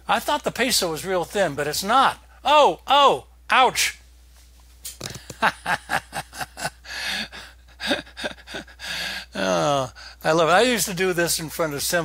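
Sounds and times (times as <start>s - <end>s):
man laughing quietly: 5.0s - 9.6s
breathy gasp: 6.8s - 10.2s.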